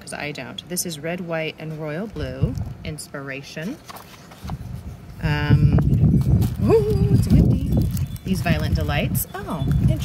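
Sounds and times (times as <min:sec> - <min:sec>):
paper and items being handled: 0:03.6 - 0:05.0, 0:06.0 - 0:09.0
woman humming: 0:06.6 - 0:07.6.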